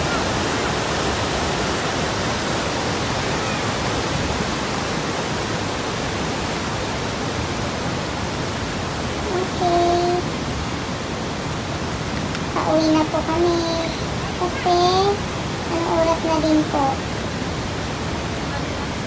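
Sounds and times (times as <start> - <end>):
whitewater rushing over boulders: 0.0 - 19.0
short held voice sound: 9.3 - 10.3.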